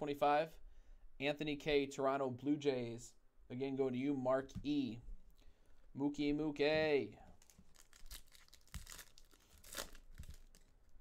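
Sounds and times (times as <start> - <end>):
faint crinkling: 6.8 - 11.0
wrapper tearing: 7.4 - 10.9.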